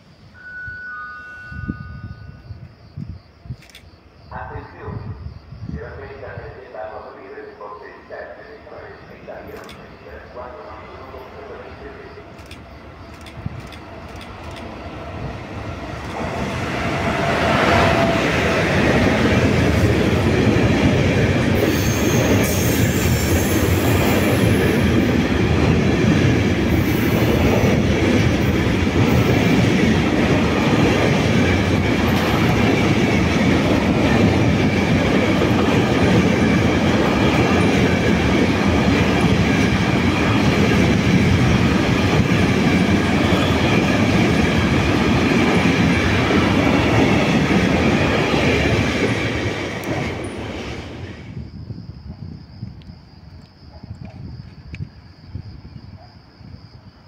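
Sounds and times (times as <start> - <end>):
freight train rolling past: 0.0 - 3.0, 4.3 - 51.7
high wheel squeal: 0.3 - 2.6, 21.6 - 24.8.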